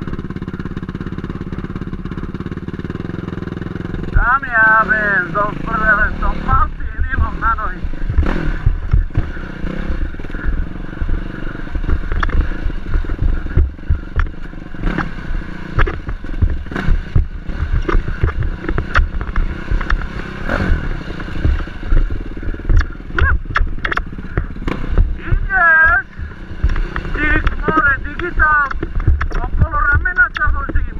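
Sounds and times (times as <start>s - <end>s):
dirt bike engine running: 0.0s - 30.9s.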